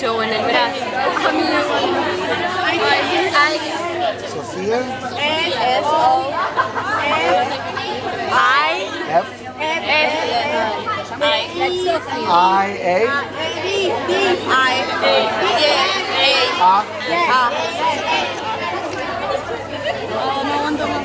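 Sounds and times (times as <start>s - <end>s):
people chattering: 0.0s - 21.0s.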